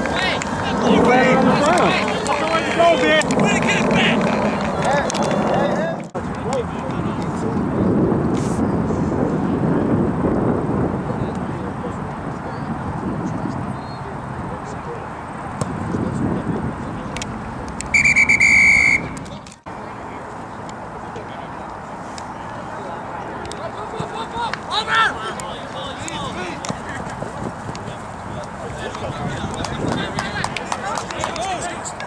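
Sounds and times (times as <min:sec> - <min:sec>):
low rumble of field noise: 0:00.0 - 0:32.0
referee's whistle blast: 0:17.9 - 0:19.2
faint distant voices: 0:18.9 - 0:32.0.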